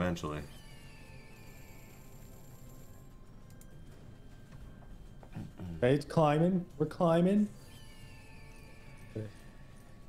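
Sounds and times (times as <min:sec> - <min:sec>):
slot game music: 0:00.0 - 0:05.1, 0:05.8 - 0:10.0.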